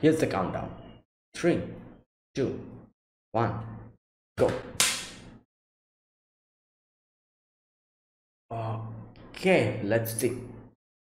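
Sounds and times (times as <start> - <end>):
sharp smack: 4.4 - 5.3.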